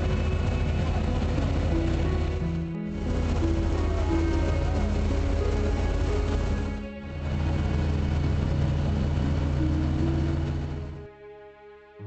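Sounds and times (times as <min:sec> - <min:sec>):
boat engine running: 0:00.0 - 0:11.1
water noise: 0:00.0 - 0:11.1.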